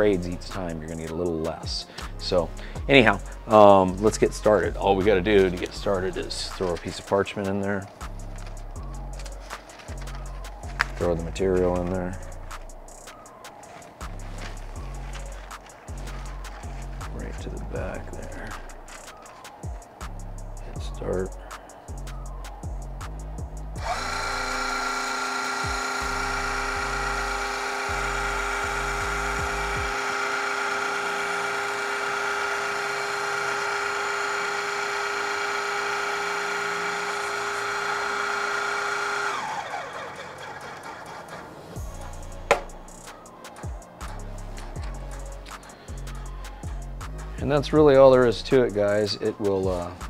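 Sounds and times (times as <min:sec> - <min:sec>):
electric hydraulic pump running: 0:01.8 - 0:21.4, 0:23.1 - 0:46.8.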